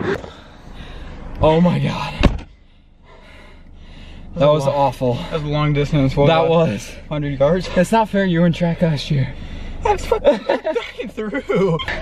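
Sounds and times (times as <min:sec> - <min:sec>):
car door slamming: 0:02.1 - 0:02.6.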